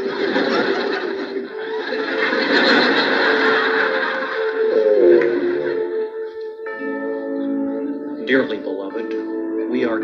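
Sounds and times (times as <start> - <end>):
audience laughter: 0.0 - 6.0
soft background music: 0.0 - 10.0.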